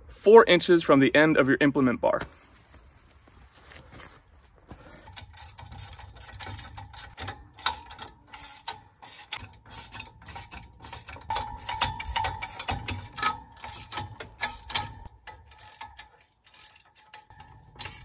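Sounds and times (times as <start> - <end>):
ratcheting wrench clicking: 5.1 - 18.0.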